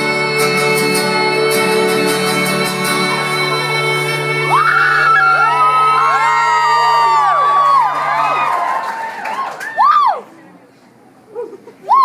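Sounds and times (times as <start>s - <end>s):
acoustic guitar chord ringing: 0.0s - 6.6s
audience whooping and cheering: 2.8s - 10.4s.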